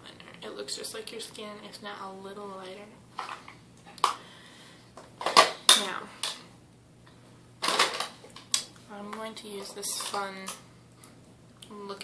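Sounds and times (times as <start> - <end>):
makeup items clattering: 7.6 - 8.4.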